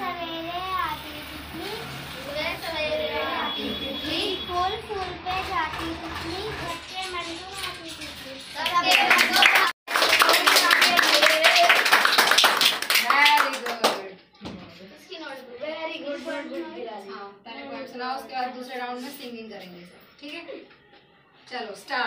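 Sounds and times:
children's voices: 0.0 - 12.1, 12.9 - 20.6
children clapping: 8.6 - 14.2.

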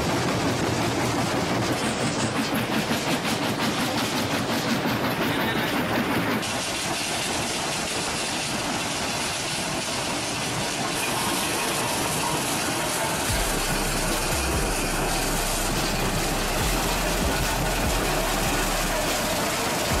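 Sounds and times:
crusher and conveyor machinery: 0.0 - 20.0
low hum: 13.3 - 20.0.

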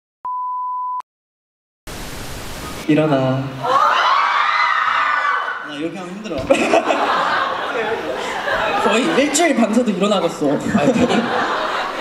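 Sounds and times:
tv static hiss: 1.9 - 3.5.

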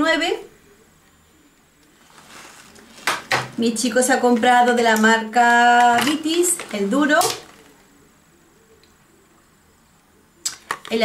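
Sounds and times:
woman speaking: 0.0 - 0.5, 3.6 - 7.6.

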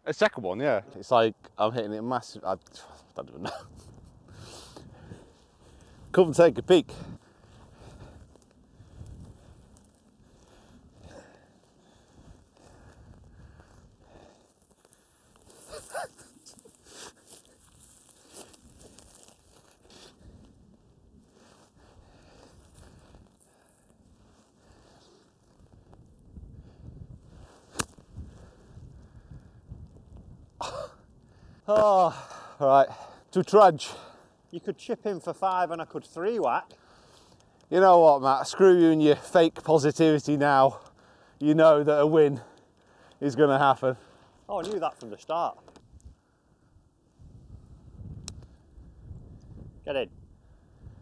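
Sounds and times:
footsteps rustling through dry grass: 3.7 - 29.2.

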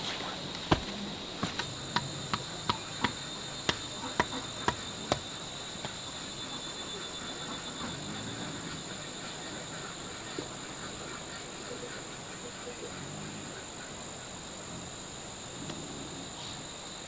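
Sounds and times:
insects chorus: 0.0 - 17.0.

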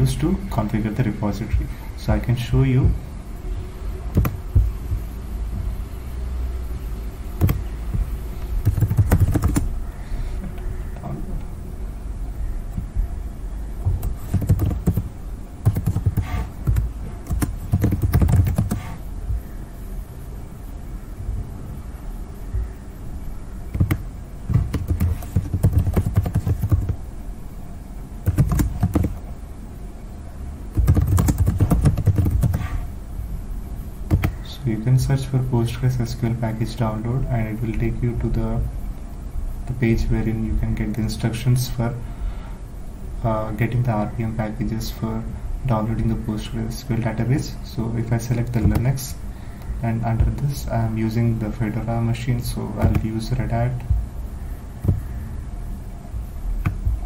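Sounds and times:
steady low hum: 0.0 - 57.0
computer keyboard keystrokes: 7.4 - 7.6, 8.6 - 9.7, 13.9 - 18.9, 23.7 - 27.0, 28.2 - 29.2, 30.8 - 32.7, 34.1 - 34.4.

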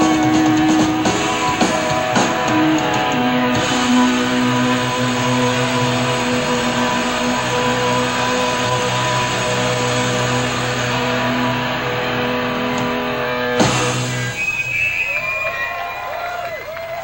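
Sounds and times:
distorted electric guitar drone: 0.0 - 14.9.

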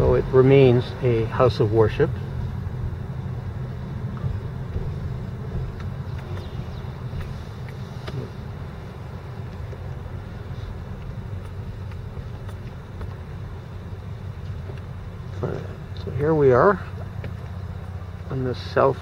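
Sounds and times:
car engine and tyres rumbling: 0.0 - 19.0
faint ticks: 10.9 - 13.2.

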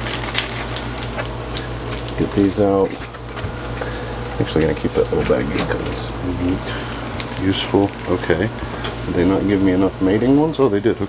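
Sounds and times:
air conditioner humming: 0.0 - 11.0
plastic bag crinkling: 0.0 - 11.0.

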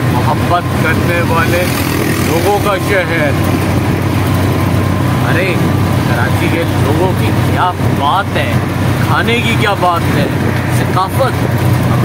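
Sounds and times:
road noise: 0.0 - 12.0
small engine running: 0.0 - 12.0.

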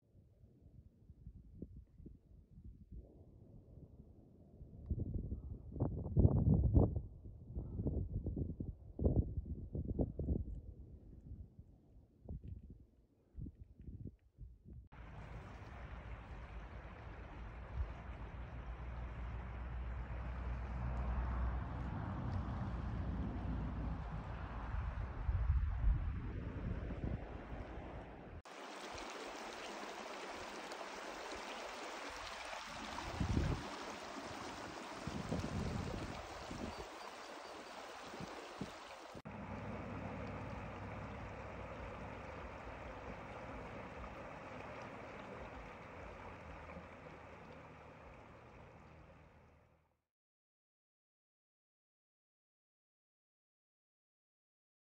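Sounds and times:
stream running over rocks: 15.0 - 21.6, 28.5 - 49.4.

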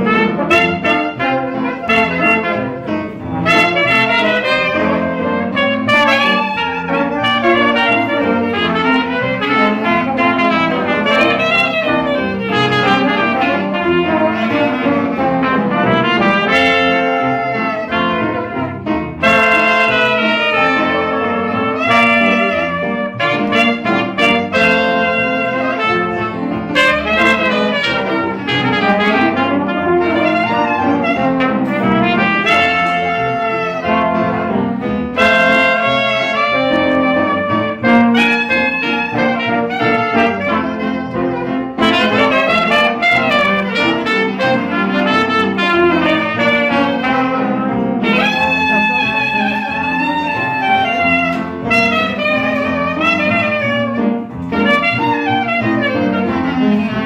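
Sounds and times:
clarinet: 0.0 - 57.0
double bass: 0.0 - 57.0
piano: 0.0 - 57.0
trombone: 0.0 - 57.0
trumpet: 0.0 - 57.0.

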